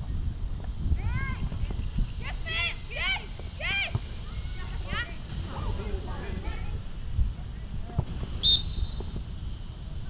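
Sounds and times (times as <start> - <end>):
referee's whistle blast: 8.4 - 9.1.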